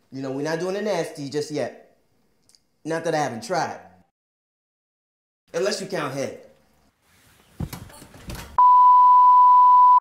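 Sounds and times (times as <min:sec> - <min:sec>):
steady test tone beep: 0:08.6 - 0:10.0.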